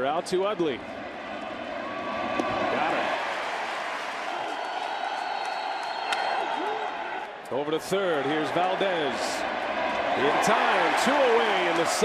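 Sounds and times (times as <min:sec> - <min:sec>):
large crowd cheering: 0:00.9 - 0:12.0.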